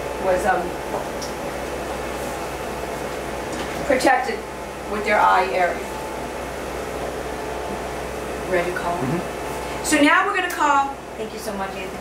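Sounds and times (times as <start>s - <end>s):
fan hiss with low hum: 0.0s - 12.0s.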